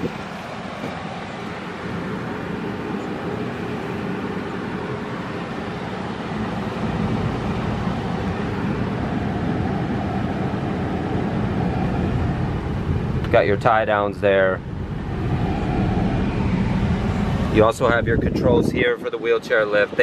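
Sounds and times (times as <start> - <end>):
van engine idling: 0.0 - 20.0.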